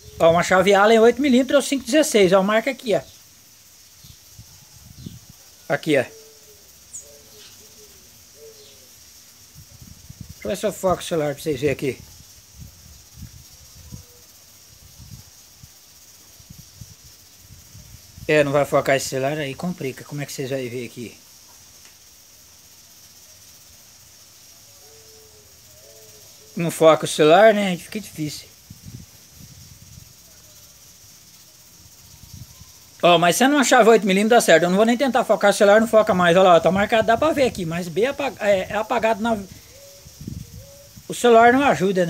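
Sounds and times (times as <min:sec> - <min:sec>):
steady high-pitched hiss: 0:00.0 - 0:42.0.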